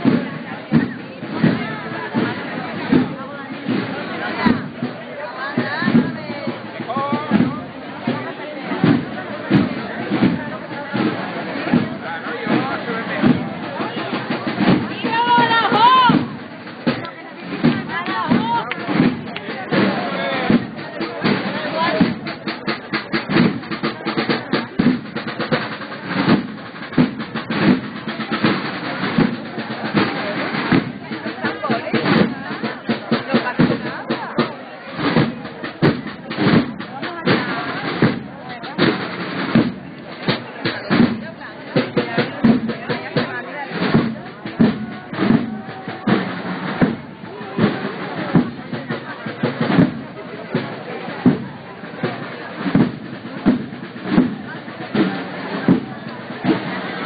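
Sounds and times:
people's voices: 0.0s - 57.0s
procession drum band: 0.0s - 57.0s
snare drum: 0.0s - 57.0s.

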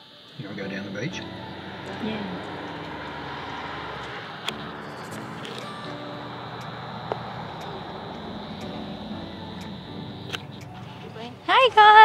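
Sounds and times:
car cabin low rumble: 0.5s - 12.0s.

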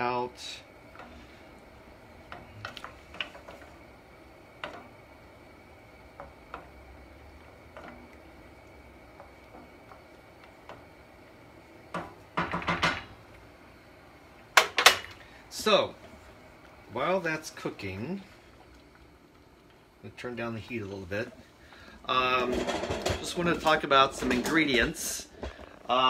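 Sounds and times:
spoon knocking against pan: 11.9s - 13.0s.

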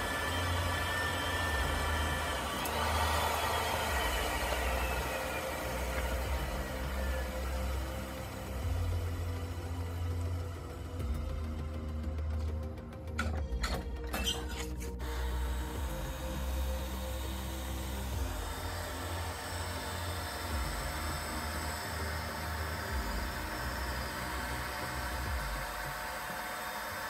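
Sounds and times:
pipe threading machine motor hum: 0.0s - 27.0s.

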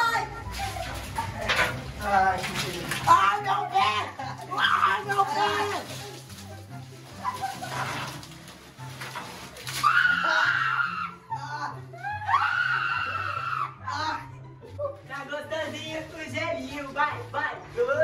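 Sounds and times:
boy screaming: 9.8s - 14.2s.

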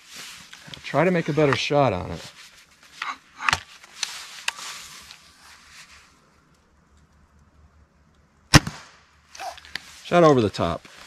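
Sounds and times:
rustling: 0.0s - 7.3s
air rifle shot: 8.5s - 9.0s.

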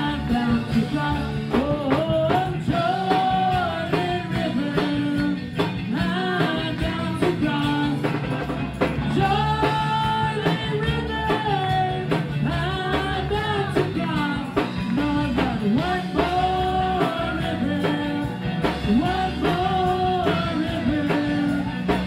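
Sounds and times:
women singing gospel: 0.0s - 8.1s, 9.1s - 22.0s
band with steady beat: 0.0s - 22.0s
electric keyboard: 0.0s - 22.0s.

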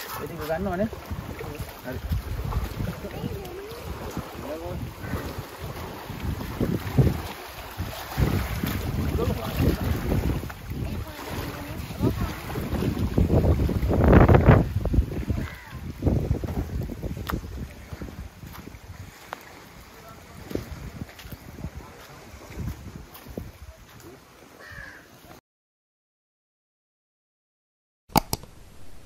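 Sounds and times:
wind buffeting microphone: 0.0s - 24.2s.

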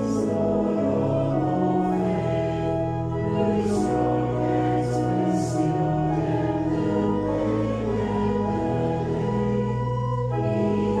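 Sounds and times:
congregation singing a hymn: 0.0s - 11.0s
organ: 0.0s - 11.0s.

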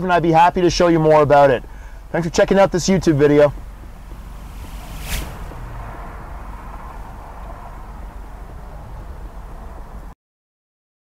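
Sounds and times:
outdoor background noise: 0.0s - 10.2s
car engine humming: 0.3s - 10.1s
sharp rush of noise: 3.6s - 8.1s.

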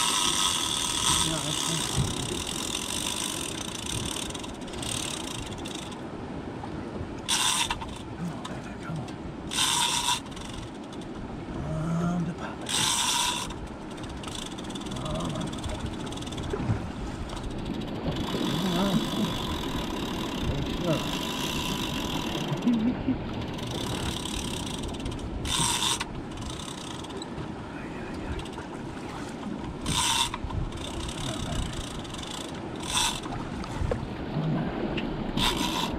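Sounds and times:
fishing line pulling against drag: 0.0s - 6.0s, 7.2s - 8.1s, 9.5s - 11.2s, 12.7s - 16.6s, 17.2s - 27.3s, 29.8s - 33.4s, 35.4s - 35.9s.

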